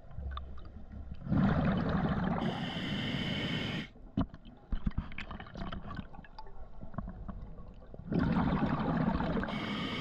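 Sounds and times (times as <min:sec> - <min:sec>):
exhaled bubbles rushing underwater: 0:01.2 - 0:02.6, 0:07.9 - 0:09.7.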